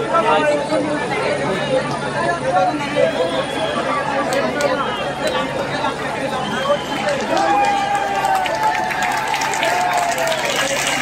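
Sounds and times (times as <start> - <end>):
outdoor crowd noise: 0.0 - 11.0
long drawn-out shout: 6.8 - 11.0.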